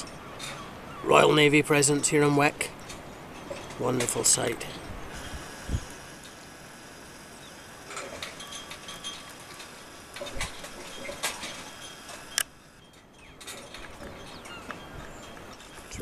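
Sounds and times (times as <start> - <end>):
faint hiss: 0.0 - 12.8.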